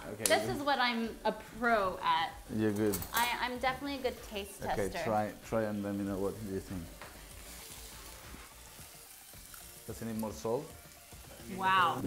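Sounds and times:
cabbage sizzling in frying pan: 0.0s - 12.0s.

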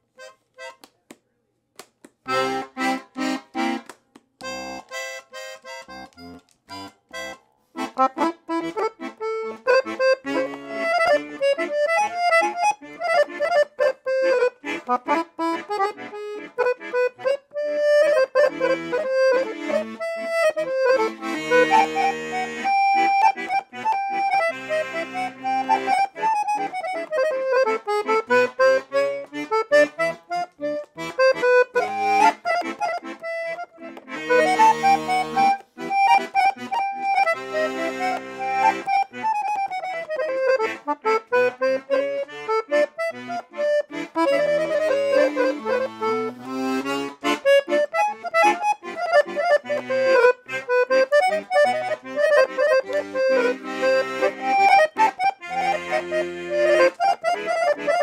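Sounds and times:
accordion melody: 0.0s - 0.9s, 2.2s - 58.0s.

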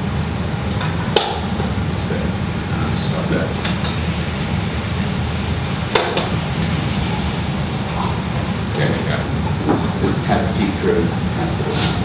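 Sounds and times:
low room hum: 0.0s - 12.0s
faint voices: 8.0s - 12.0s.

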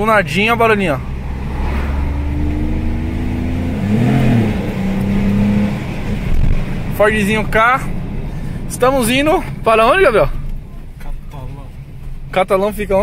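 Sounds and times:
car engine heard from inside: 0.0s - 13.0s.

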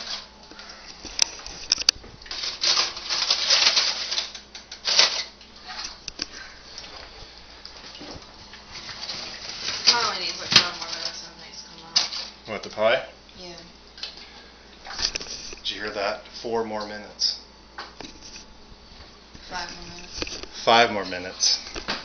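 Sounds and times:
aluminium foil crinkling: 0.0s - 12.6s, 19.3s - 21.8s.

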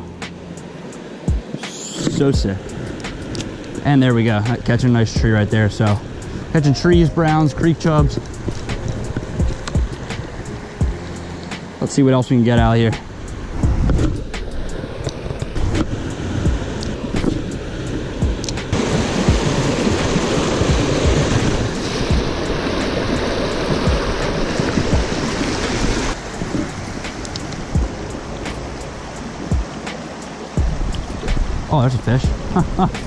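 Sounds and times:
creek water rushing over rocks: 0.0s - 33.0s.

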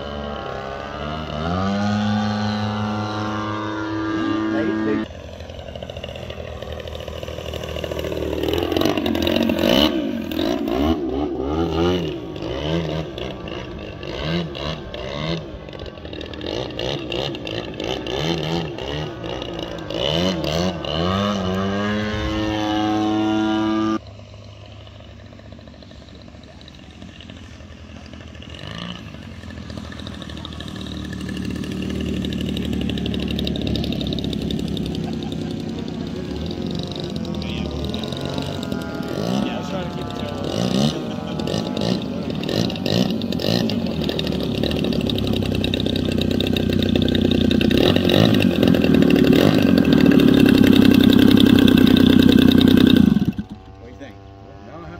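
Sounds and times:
model airplane engine: 0.0s - 54.9s.

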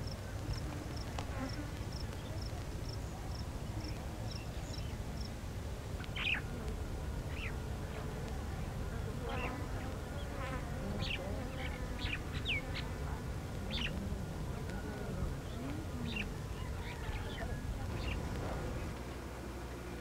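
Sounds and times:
insects buzzing: 0.0s - 20.0s
bird chirps: 6.0s - 6.5s
low rumble: 10.8s - 19.6s.

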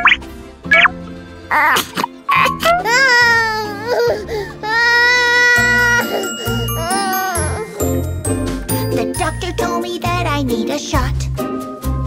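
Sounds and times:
cartoon baby crying: 1.5s - 8.1s.

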